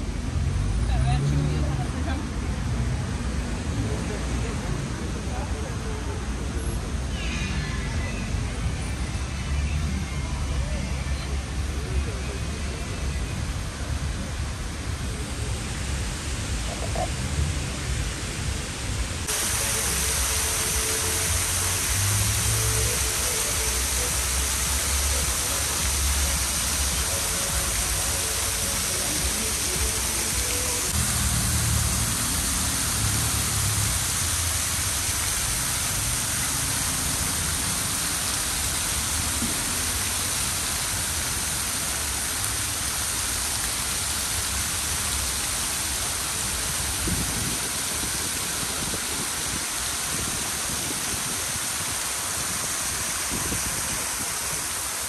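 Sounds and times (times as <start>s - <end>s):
passing traffic rumble: 0.0s - 41.7s
fountain water splashing: 0.0s - 55.0s.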